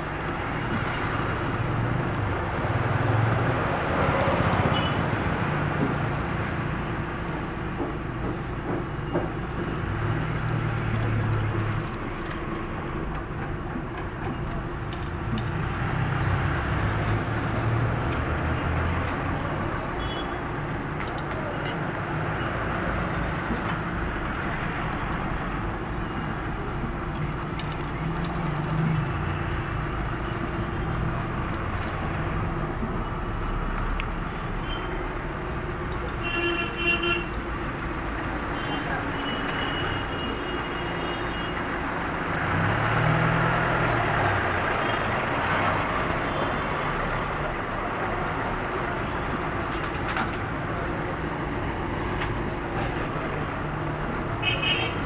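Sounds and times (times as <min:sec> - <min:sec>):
street traffic: 0:00.0 - 0:55.0
vehicle horn toot: 0:54.4 - 0:55.0.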